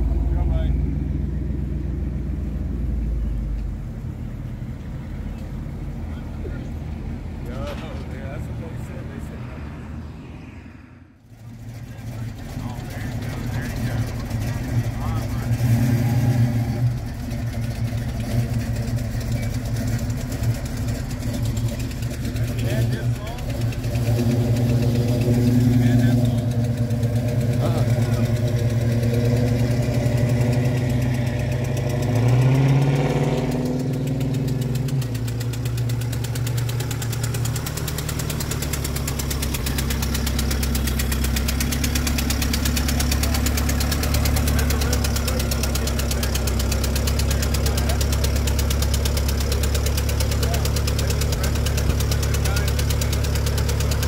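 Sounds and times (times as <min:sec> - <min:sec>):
car engine idling: 0:00.0 - 0:10.2, 0:11.1 - 0:54.0
engine revving: 0:07.6 - 0:54.0.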